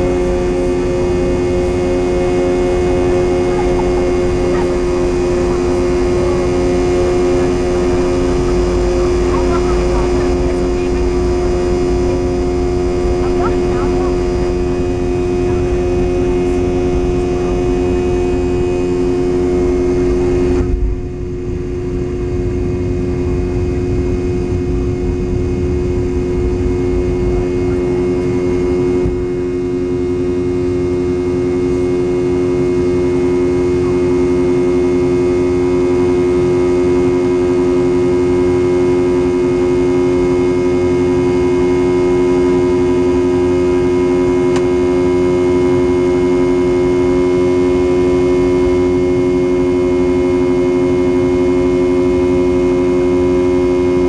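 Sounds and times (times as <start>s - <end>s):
jet engines droning at takeoff: 0.0s - 54.0s.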